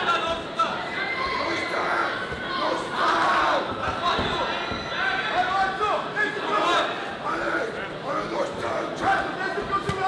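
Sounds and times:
spectators shouting and cheering: 0:00.0 - 0:10.0.

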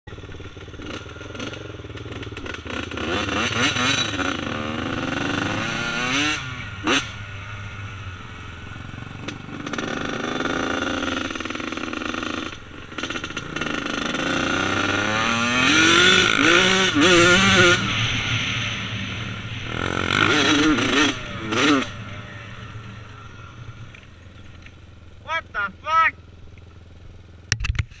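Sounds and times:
dirt bike engine revving: 0:00.1 - 0:27.4.

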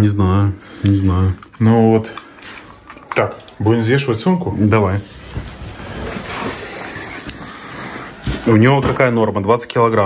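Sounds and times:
clothes rustling: 0:00.9 - 0:09.2.

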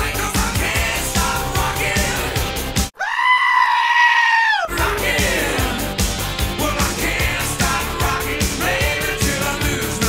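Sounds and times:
rock music: 0:00.0 - 0:02.9, 0:04.7 - 0:10.0
high-pitched scream: 0:03.0 - 0:04.8.

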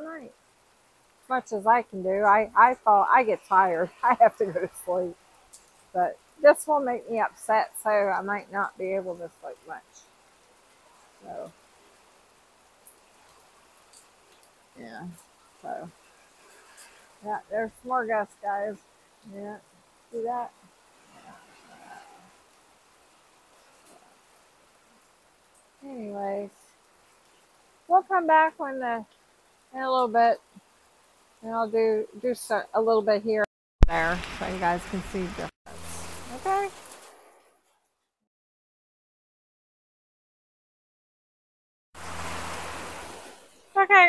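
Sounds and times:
wind and rain in trees: 0:00.0 - 0:37.8, 0:42.0 - 0:44.0.

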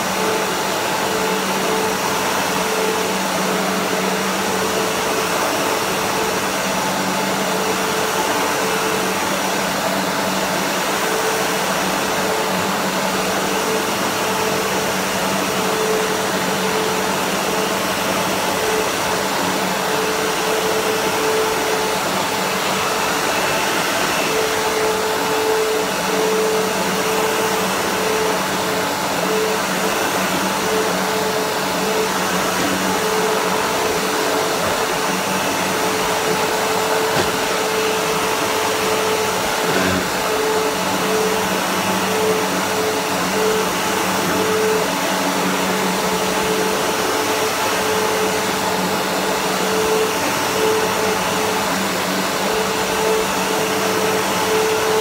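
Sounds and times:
vacuum cleaner running: 0:00.0 - 0:55.0.

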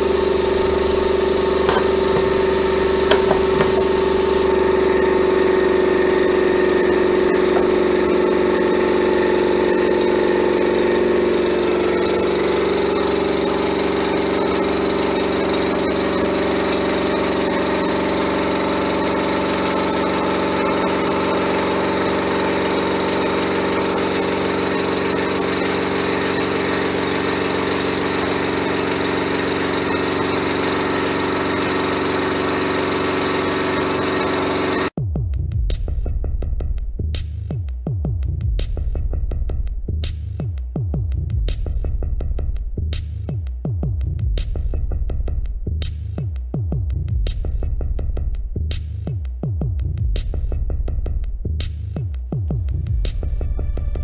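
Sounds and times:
air compressor motor running: 0:00.0 - 0:35.0.

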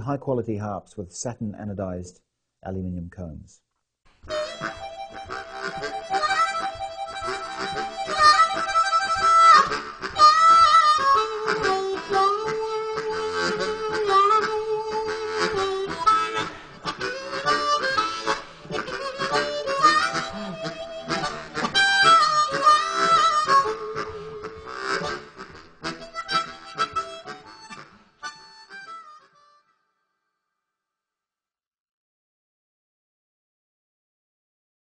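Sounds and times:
steady rhythmic accompaniment: 0:04.1 - 0:29.4
harmonica playing a tune: 0:04.2 - 0:29.9.

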